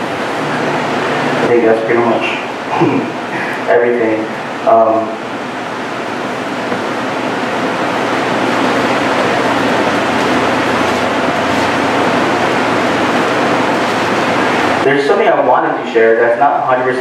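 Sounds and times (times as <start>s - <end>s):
steady rushing noise: 0.0s - 16.8s.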